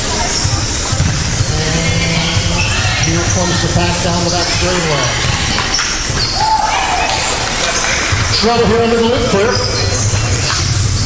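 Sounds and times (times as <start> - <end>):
echoing hall noise: 0.0 - 11.0.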